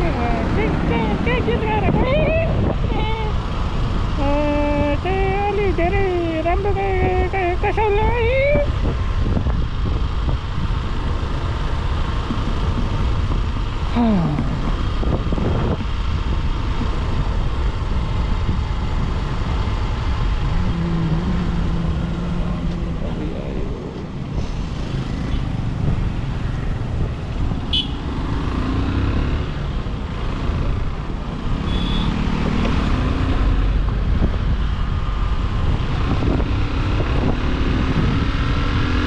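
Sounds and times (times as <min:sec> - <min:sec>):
wind on microphone: 0:00.0 - 0:11.5, 0:12.1 - 0:27.7, 0:32.4 - 0:39.0
motorcycle engine and road noise: 0:00.0 - 0:39.0
vehicles passing: 0:00.0 - 0:39.0.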